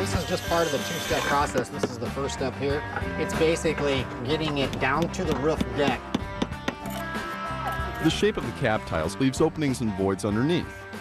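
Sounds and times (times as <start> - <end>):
guitar music: 0.0 - 10.0
hammer tapping a nail: 4.4 - 6.8.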